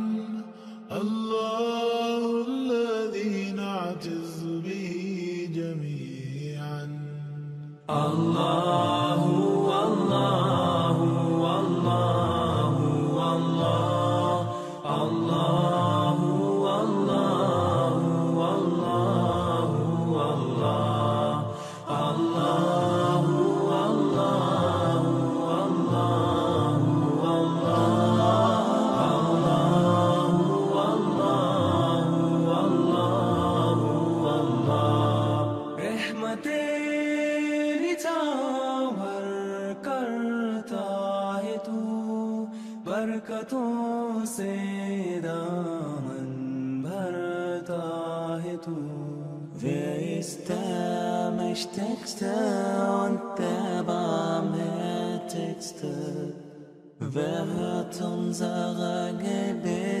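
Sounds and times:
voices chanting religious song: 7.9 - 42.3, 44.3 - 60.0.

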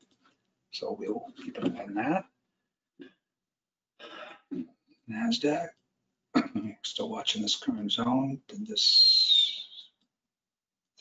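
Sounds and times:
man clearing his throat: 6.4 - 6.8.

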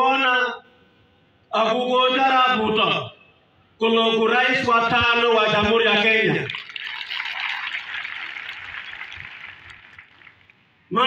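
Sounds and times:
crowd applauding: 6.5 - 10.6.

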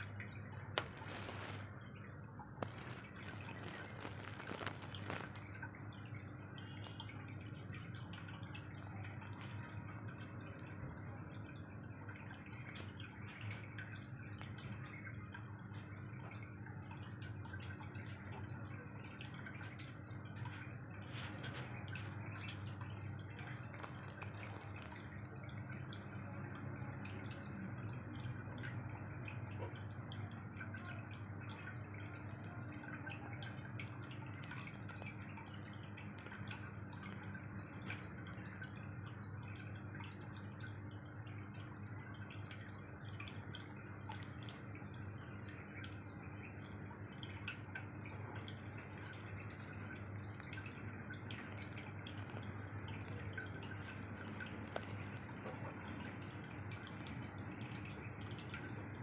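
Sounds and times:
low pump hum: 0.0 - 59.0
water trickling and dripping: 0.0 - 59.0.

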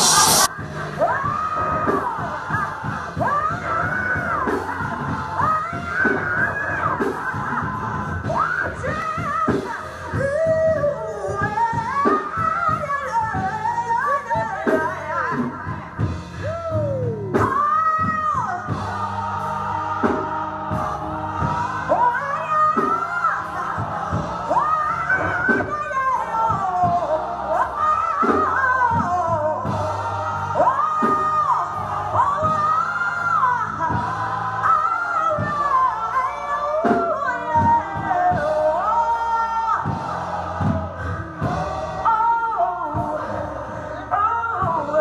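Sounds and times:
bass and drums: 0.0 - 45.0
woman singing gospel: 0.0 - 45.0.

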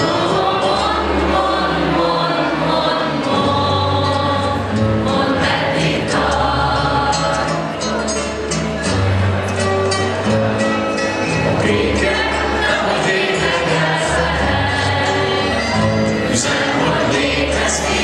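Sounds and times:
young choir singing: 0.0 - 8.0, 11.4 - 18.0.

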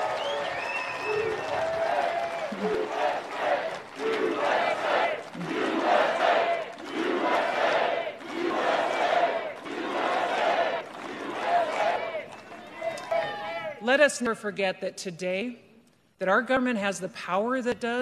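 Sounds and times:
crowd chanting: 0.0 - 13.8.

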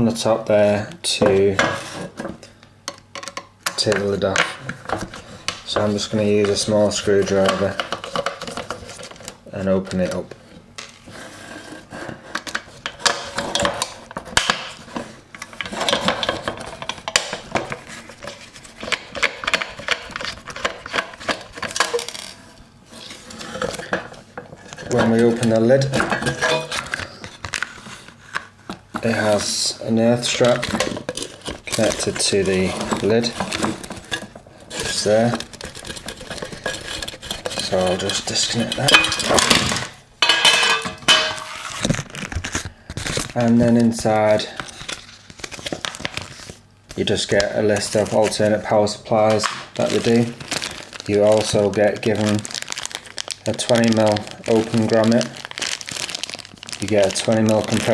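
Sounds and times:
sheet metal clinking and rattling: 26.2 - 26.8, 37.0 - 39.6.

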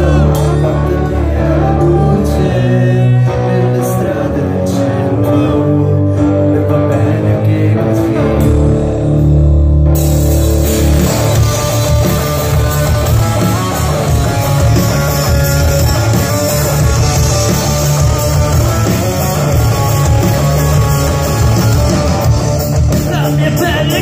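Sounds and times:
ringing guitar chords: 0.0 - 24.0
rock band playing live: 0.0 - 24.0.

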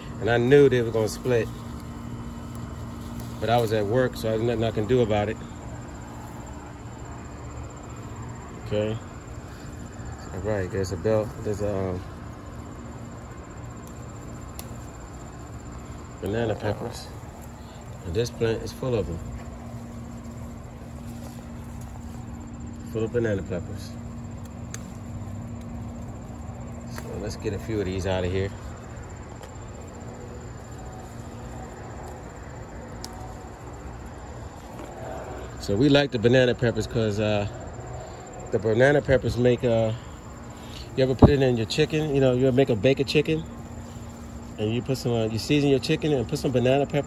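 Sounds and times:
high rapid insect trill: 0.0 - 47.0
low outdoor hum: 0.0 - 47.0.

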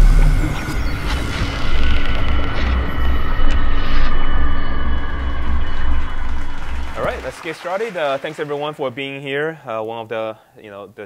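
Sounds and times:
deep pulsing bass rumble: 0.0 - 7.1
sustained high electronic tones: 0.0 - 7.2.

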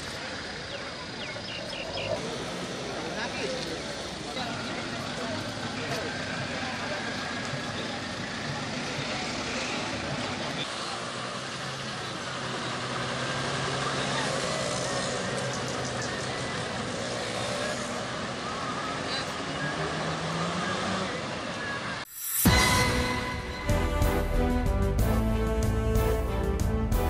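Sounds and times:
people talking: 0.0 - 12.9, 13.6 - 21.9
heavy vehicle engine running: 0.0 - 27.0.

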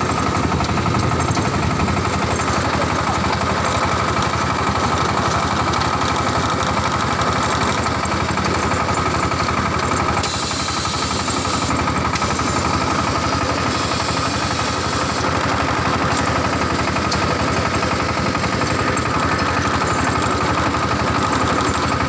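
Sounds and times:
brick machine pulsing drone: 0.0 - 22.0.

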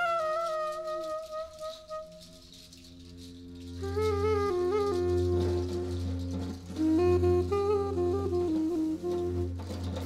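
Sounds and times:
hand shaker rattling: 0.0 - 10.0
wooden flute: 0.0 - 10.0.

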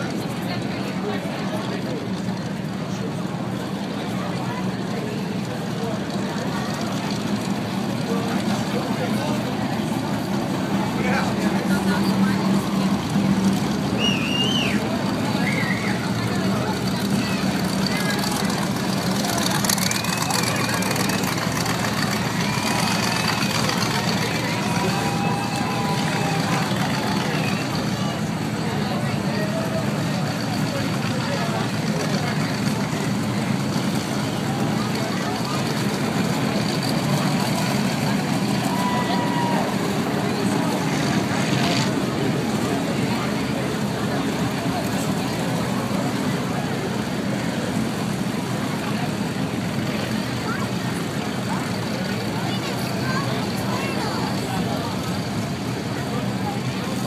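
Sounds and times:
people talking nearby: 0.0 - 57.0
race car engines: 0.0 - 57.0.

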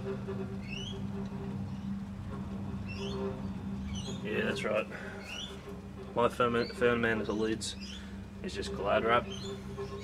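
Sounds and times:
steady low hum: 0.0 - 10.0
small bird chirping: 0.6 - 1.0, 2.8 - 4.6, 5.2 - 5.7, 6.5 - 8.1, 9.0 - 10.0.

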